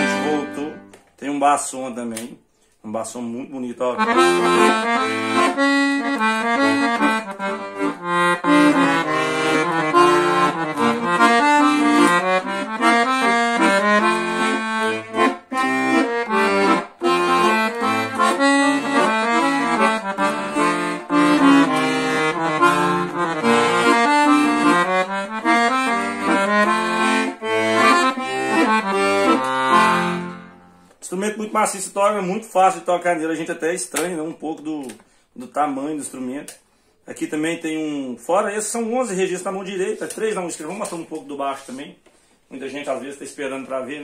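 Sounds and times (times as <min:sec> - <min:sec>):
accordion melody: 0:00.0 - 0:01.7, 0:03.8 - 0:34.1, 0:38.6 - 0:43.8
accordion bass notes: 0:00.0 - 0:02.2, 0:03.1 - 0:34.9.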